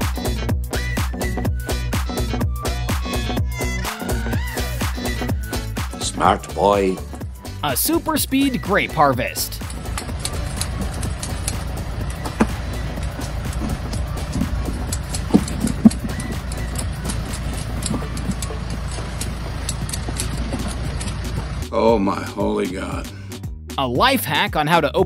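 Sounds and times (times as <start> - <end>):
steady low rumble: 9.2 - 23.1
light clicks and knocks: 9.6 - 21.6.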